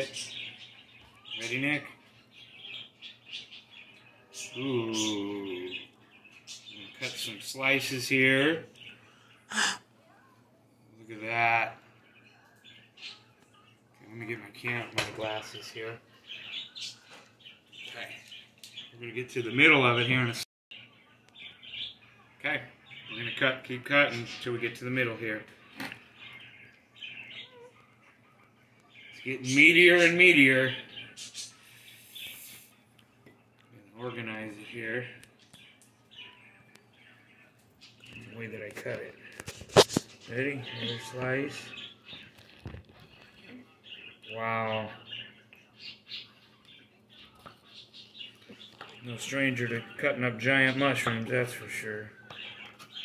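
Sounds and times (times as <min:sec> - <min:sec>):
bird chirping: 0:00.0 - 0:24.5, 0:26.0 - 0:53.0.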